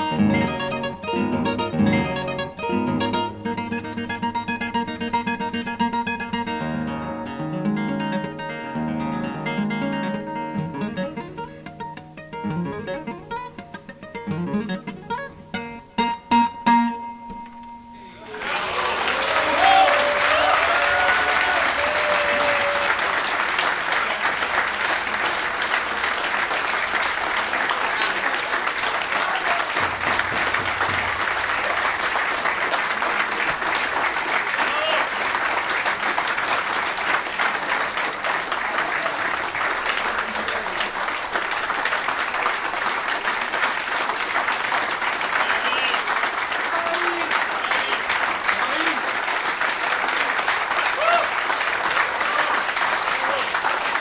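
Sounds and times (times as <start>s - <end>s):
crowd applauding: 0.0s - 15.2s, 18.1s - 54.0s.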